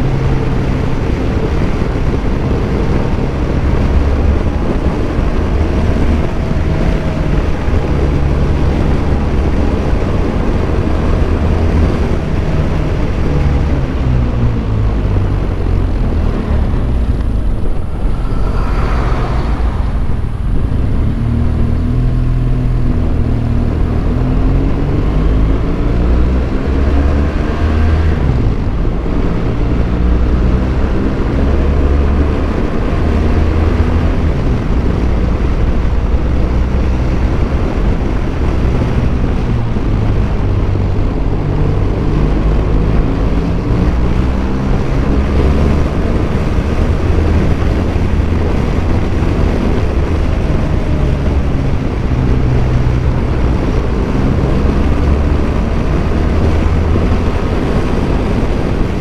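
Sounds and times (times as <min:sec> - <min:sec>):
wind rumble on microphone: 0:00.0 - 0:59.0.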